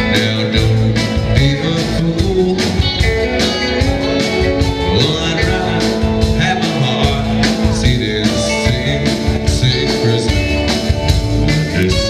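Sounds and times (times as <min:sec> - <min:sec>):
drum kit beat: 0:00.0 - 0:12.0
electric guitars: 0:00.0 - 0:12.0
upright double bass: 0:00.0 - 0:12.0.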